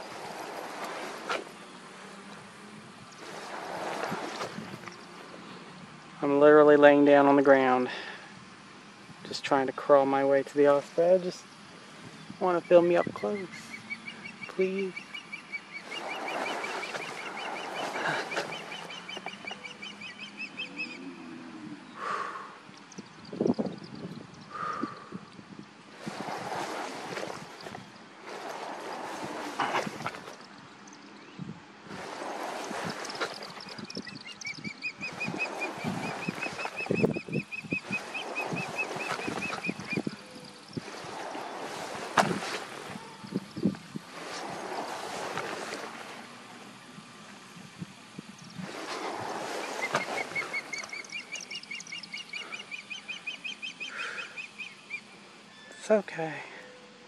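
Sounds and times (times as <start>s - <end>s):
rustling of grass: 0.0s - 6.2s, 10.3s - 20.4s, 25.5s - 52.7s
osprey alarm calls: 11.4s - 25.1s, 32.0s - 45.9s, 48.4s - 56.0s.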